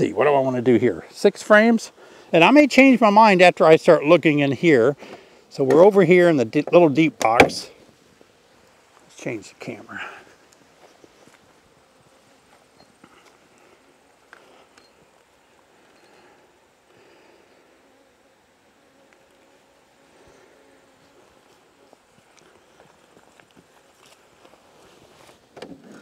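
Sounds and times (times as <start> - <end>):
honeybees humming: 0.0 - 26.0
footsteps: 7.2 - 15.1, 20.2 - 26.0.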